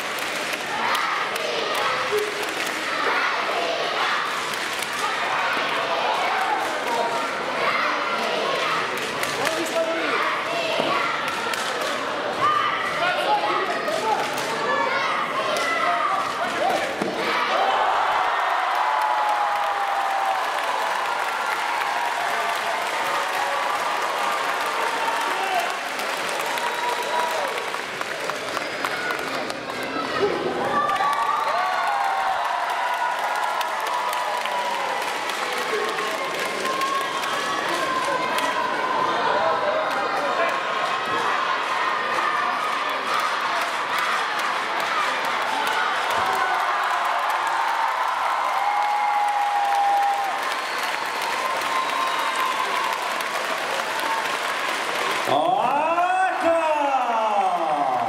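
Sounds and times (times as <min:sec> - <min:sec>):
applause: 0:00.0 - 0:03.0, 0:04.3 - 0:07.2, 0:18.1 - 0:38.9, 0:39.8 - 0:58.0
crowd cheering and shouting: 0:00.0 - 0:58.0.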